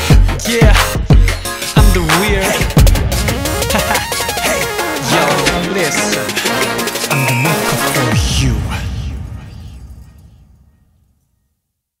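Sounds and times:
electronic dance-pop bass notes: 0:00.0 - 0:08.1.

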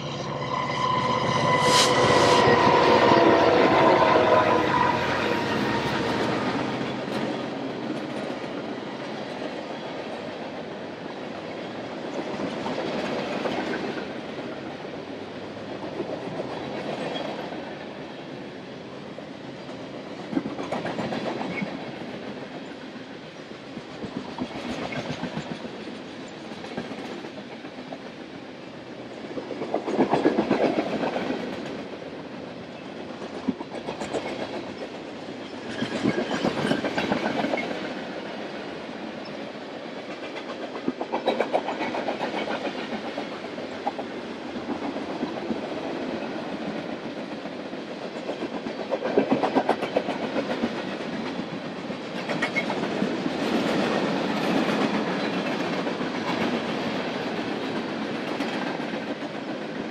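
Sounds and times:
freight train rumbling past: 0:00.0 - 0:59.9
train wheels clicking over rail joints: 0:29.0 - 0:38.3, 0:39.8 - 0:59.9.

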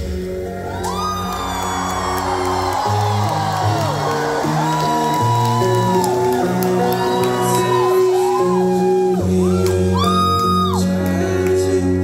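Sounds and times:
audience whooping: 0:00.5 - 0:11.0.

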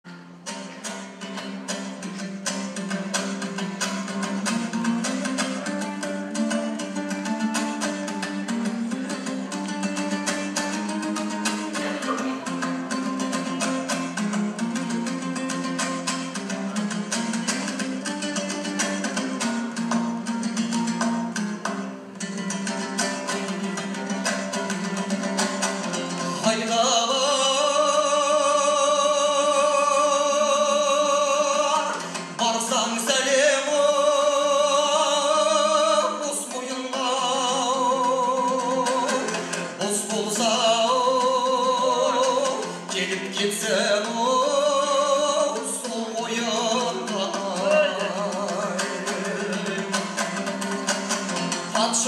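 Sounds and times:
lute strummed in fast rhythm: 0:00.0 - 0:52.0
man singing: 0:01.2 - 0:20.9, 0:22.4 - 0:52.0.

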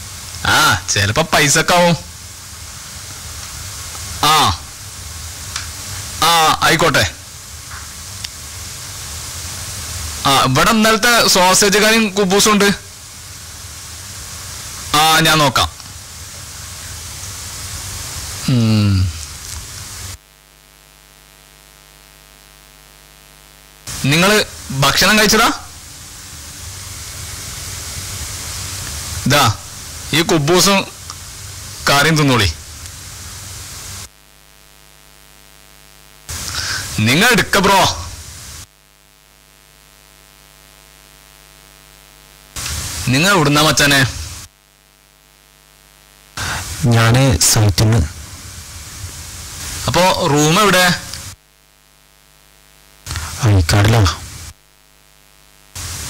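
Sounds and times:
faint electrical hum: 0:00.0 - 0:56.0
sound system hiss: 0:00.0 - 0:56.0
man saying a word: 0:18.4 - 0:19.2.

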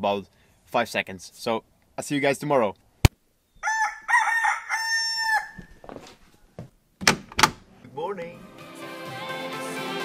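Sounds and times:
rooster crowing: 0:03.6 - 0:05.8.

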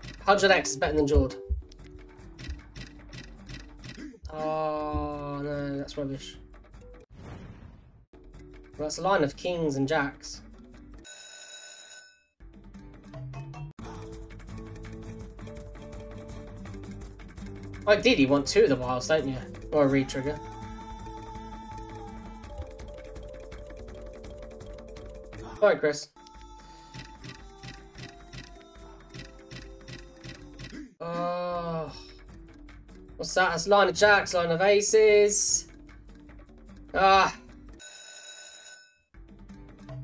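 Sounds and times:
slot game music: 0:00.0 - 0:01.6
looping game music: 0:00.0 - 0:06.4, 0:21.5 - 0:25.7
regular ticking: 0:26.2 - 0:30.8.

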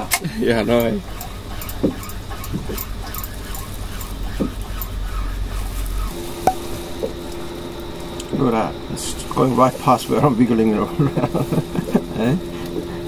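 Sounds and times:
boat engine rumble: 0:00.0 - 0:13.0
steady low hum: 0:00.0 - 0:13.0.

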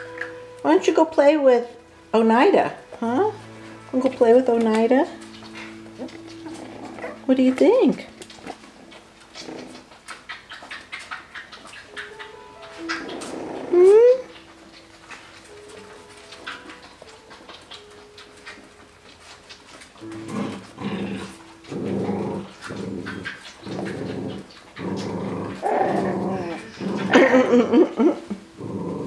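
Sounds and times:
puppies play-growling: 0:02.8 - 0:29.0
puppy yelp: 0:05.4 - 0:07.3, 0:08.2 - 0:15.2.

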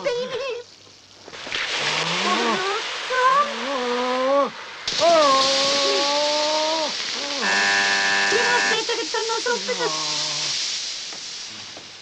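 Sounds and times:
steam hissing from inhaler: 0:02.0 - 0:12.0.

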